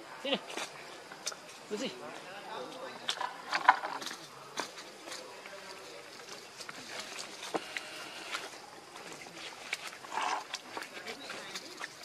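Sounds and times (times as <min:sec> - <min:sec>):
rustling leaves and dirt: 0:00.0 - 0:12.0.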